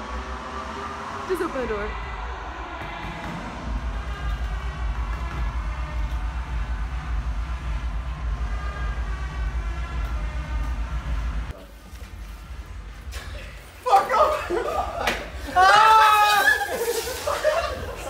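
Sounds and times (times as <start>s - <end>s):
deep throbbing rumble: 0.0s - 11.5s.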